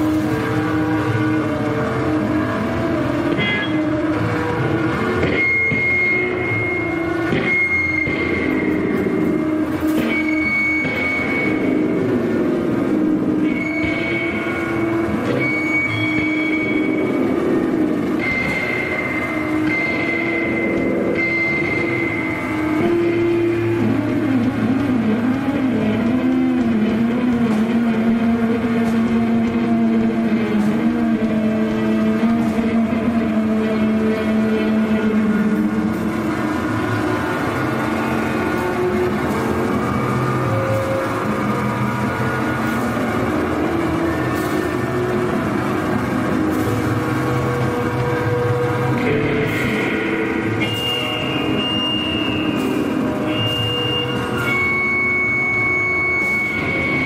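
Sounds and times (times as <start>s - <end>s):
distorted guitar drone: 0.0s - 57.0s
high whine: 0.0s - 57.0s.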